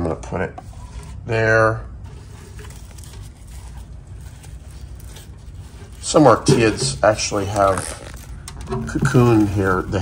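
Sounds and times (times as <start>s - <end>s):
paper towel rustling: 2.0s - 10.0s.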